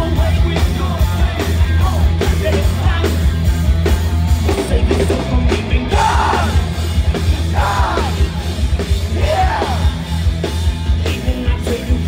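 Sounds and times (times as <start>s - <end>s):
rock band playing: 0.0s - 12.0s
person singing: 4.6s - 6.7s.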